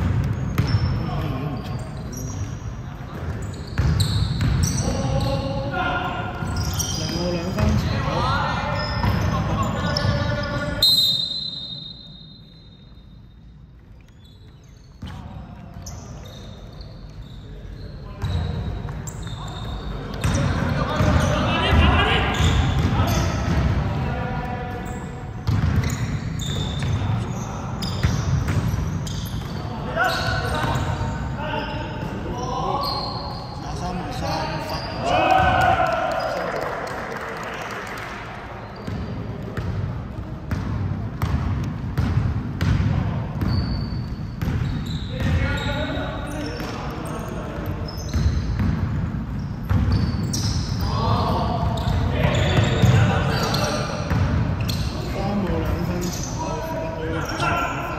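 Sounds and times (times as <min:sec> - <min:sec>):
shoe squeaks: 0:00.3 - 0:23.6, 0:24.6 - 0:35.4, 0:38.6 - 0:39.4, 0:43.3 - 0:57.9
short high whistle: 0:10.8 - 0:13.0
players shouting: 0:34.7 - 0:36.6.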